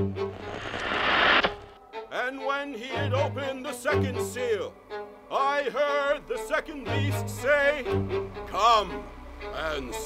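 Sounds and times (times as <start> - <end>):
rush of noise: 0.0 - 1.8.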